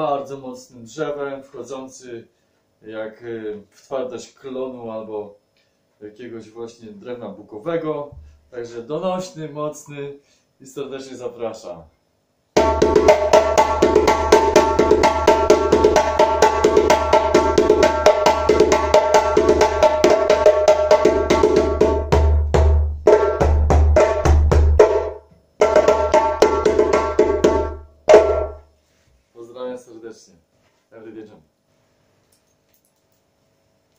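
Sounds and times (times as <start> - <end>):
djembe slaps and tones: 12.6 - 28.6
deep djembe bass strokes: 12.6 - 28.7.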